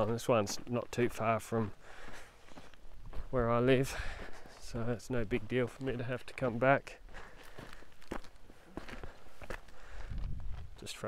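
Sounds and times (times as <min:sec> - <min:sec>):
footsteps on dirt ground: 0:00.0 - 0:11.0.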